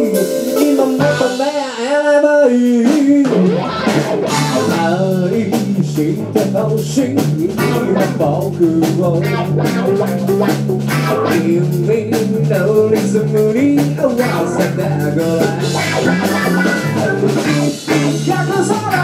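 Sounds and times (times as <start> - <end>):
wavering guitar melody: 0.0 - 1.5, 3.3 - 5.2, 7.6 - 11.6, 14.2 - 19.0
live rock band playing: 0.0 - 19.0.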